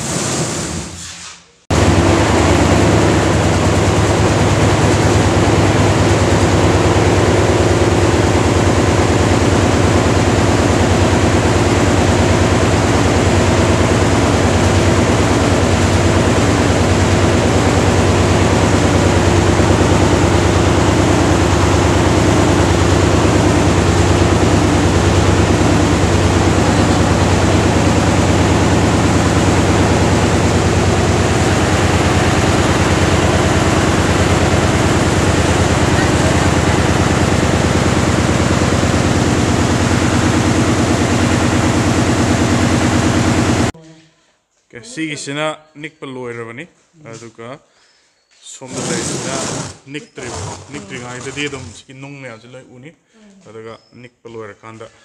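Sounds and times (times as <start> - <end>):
vibrating table motor humming: 1.7 - 43.7, 48.7 - 51.8.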